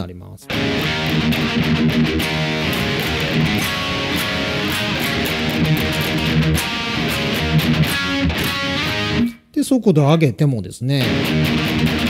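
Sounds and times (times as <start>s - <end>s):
electric guitar rock riff: 0.4s - 9.5s, 11.0s - 12.0s.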